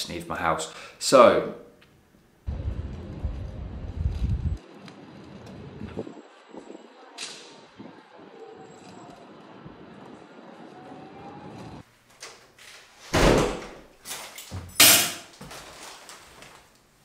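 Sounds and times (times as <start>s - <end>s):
faint street background: 2.0s - 11.9s
door thudding: 13.1s - 13.8s.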